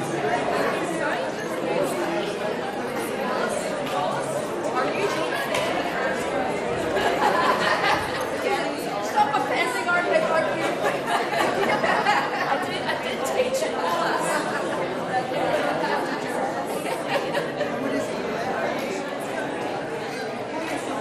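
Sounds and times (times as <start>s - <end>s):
overlapping conversation: 0.4s - 19.1s.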